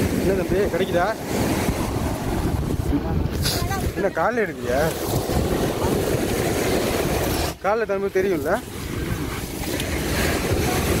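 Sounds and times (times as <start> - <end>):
surf washing: 0.0 - 11.0
wind buffeting microphone: 0.0 - 11.0.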